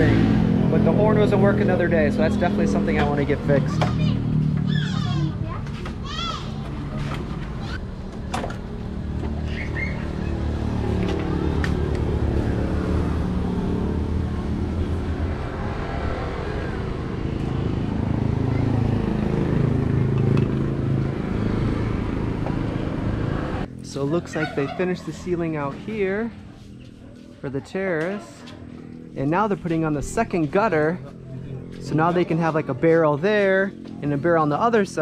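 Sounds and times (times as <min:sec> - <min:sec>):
motorcycle engine running: 0:10.1 - 0:24.8.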